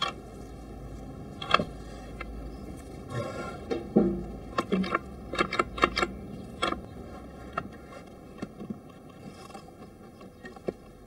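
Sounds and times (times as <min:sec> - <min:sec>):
wooden knocks and clacks: 0:03.7 - 0:05.9.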